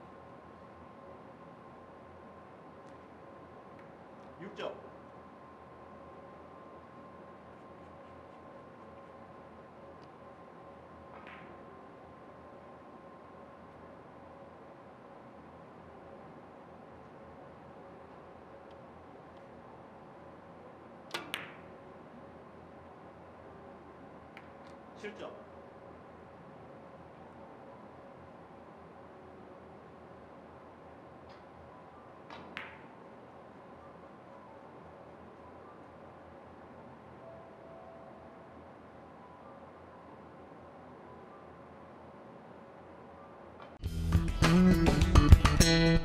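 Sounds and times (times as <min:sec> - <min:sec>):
faint steady tones: 0:00.0 - 0:43.8
billiard balls clicking: 0:11.1 - 0:11.6, 0:21.1 - 0:21.7, 0:32.3 - 0:32.9
cue tip striking ball: 0:11.1 - 0:11.7, 0:21.1 - 0:21.7, 0:32.3 - 0:32.9.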